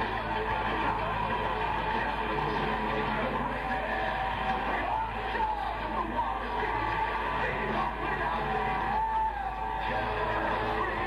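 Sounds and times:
distorted electric guitar bending notes: 0.0s - 11.0s
heavy metal band playing live: 0.0s - 11.0s.

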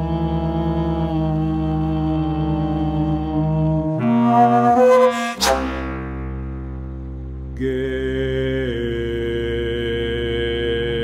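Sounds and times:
chamber music with low held notes: 0.0s - 11.0s
sharp loud accented attack: 4.0s - 7.2s.

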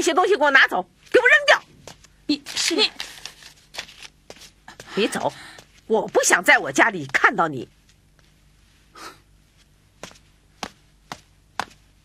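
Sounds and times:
footsteps on hard floor: 9.5s - 11.9s.

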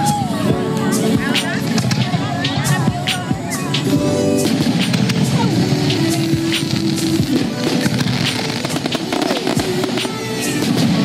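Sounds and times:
fireworks bangs and crackling: 0.0s - 11.0s.

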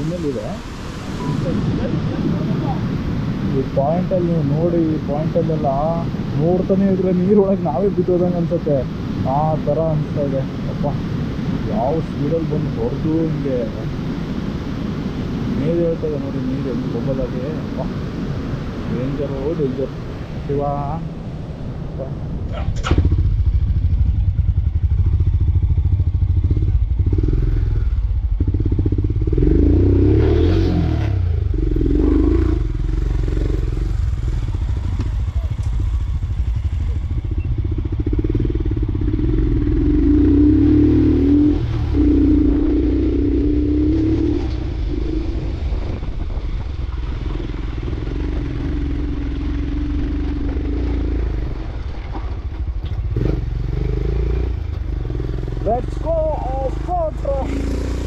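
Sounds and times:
motorcycle engine running: 22.5s - 58.0s.

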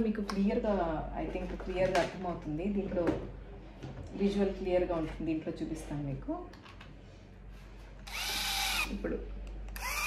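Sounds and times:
epilator motor whine: 8.0s - 9.0s, 9.7s - 10.0s.

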